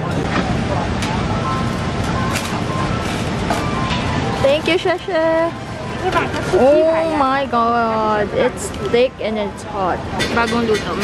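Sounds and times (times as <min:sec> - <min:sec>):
traffic: 0:00.0 - 0:11.0.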